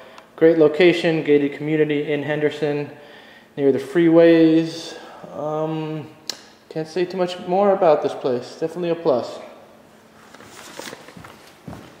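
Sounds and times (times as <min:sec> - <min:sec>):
footsteps walking: 0:10.2 - 0:12.0.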